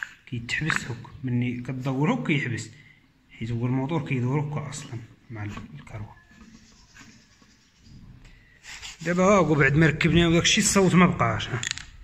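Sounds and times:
pulley rotor spinning with scratchy rustle: 6.2 - 8.2.

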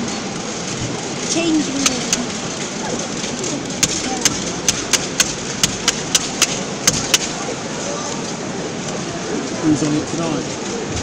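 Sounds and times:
sharp hand claps: 3.8 - 7.4.

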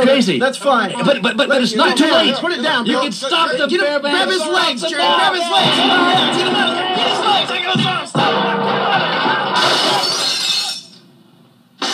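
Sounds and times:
radio comedy music and commotion: 0.0 - 11.0
glass shattering crash effect: 5.6 - 7.6, 9.6 - 10.9.

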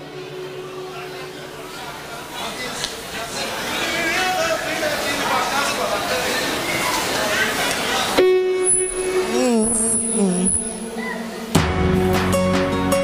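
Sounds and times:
crowd chatter: 0.0 - 12.1
live music wavering melody: 8.2 - 13.0.

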